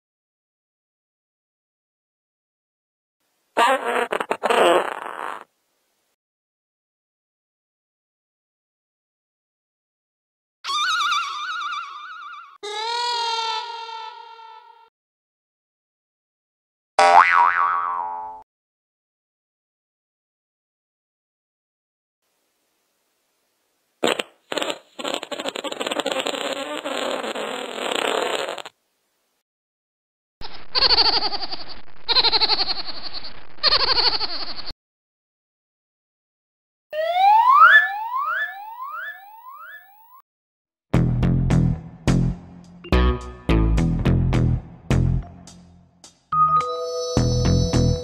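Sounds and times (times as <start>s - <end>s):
cartoon boing: 17.0s - 18.4s, 37.0s - 40.2s
rising siren-like whoop: 37.0s - 39.0s.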